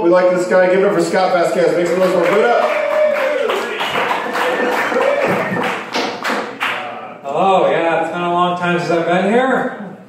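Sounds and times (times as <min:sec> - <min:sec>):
audience applauding: 0:01.6 - 0:06.8.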